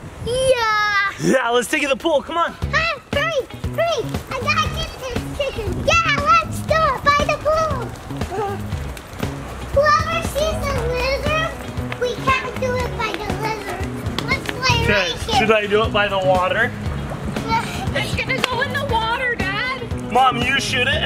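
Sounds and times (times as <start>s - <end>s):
young children's excited voices: 0.2s - 1.4s, 2.4s - 16.7s, 17.3s - 20.0s
background music with bass line: 1.9s - 21.0s.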